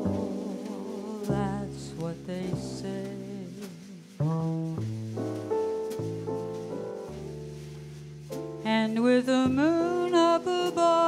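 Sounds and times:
woman singing: 0:00.0 - 0:04.8, 0:08.6 - 0:11.0
double bass line: 0:00.0 - 0:11.0
keyboard piano chords: 0:00.0 - 0:11.0.

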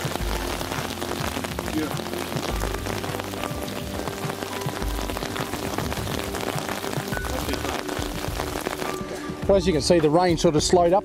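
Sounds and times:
rain falling on river: 0:00.0 - 0:09.2.

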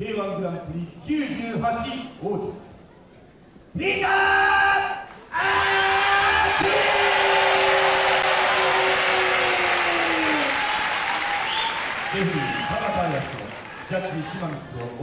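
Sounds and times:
crowd applauding: 0:06.1 - 0:15.0
ring announcer calling over pa: 0:12.0 - 0:15.0.

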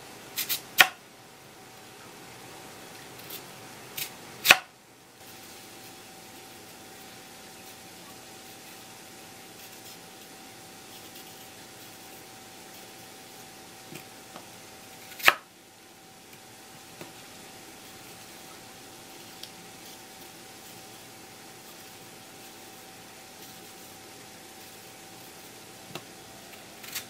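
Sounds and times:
knife slicing radish: 0:00.4 - 0:01.0, 0:04.0 - 0:04.7, 0:09.5 - 0:10.2, 0:10.8 - 0:13.0, 0:15.0 - 0:15.5, 0:21.6 - 0:27.0.

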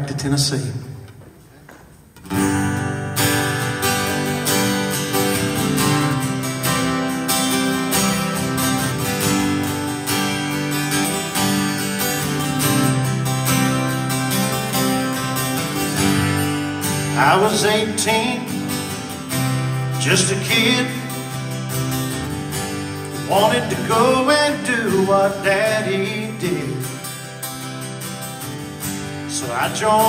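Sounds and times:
acoustic guitars playing country: 0:00.9 - 0:30.0.

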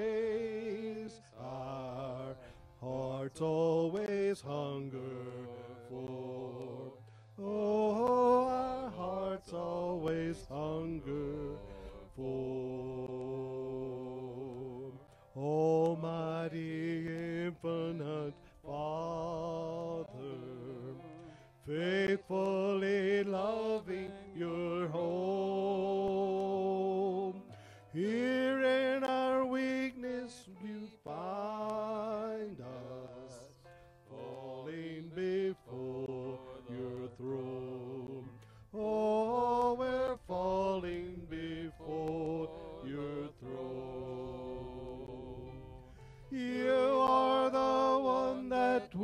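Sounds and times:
keyboard accompaniment: 0:00.0 - 0:49.0
men singing a hymn through a pa: 0:00.0 - 0:49.0.

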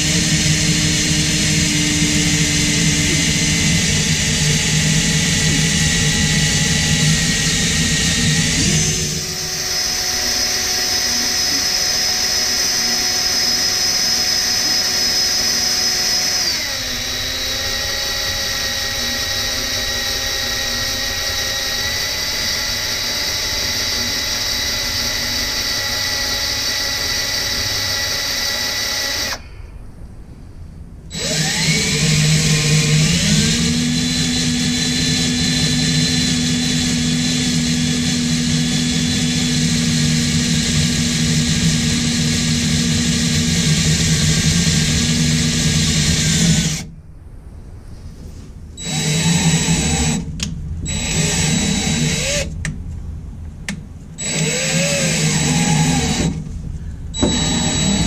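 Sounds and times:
cordless drill motor whine: 0:00.0 - 0:29.5, 0:31.1 - 0:46.9, 0:48.8 - 0:52.6, 0:54.2 - 0:58.0.

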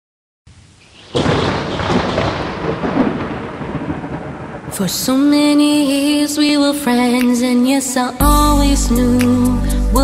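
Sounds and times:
steady rain: 0:00.5 - 0:05.9
thunder rumbling: 0:00.5 - 0:06.8.

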